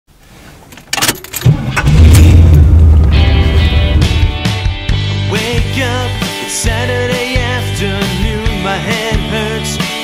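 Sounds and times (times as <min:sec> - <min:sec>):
car engine starting and running: 0:00.7 - 0:05.4.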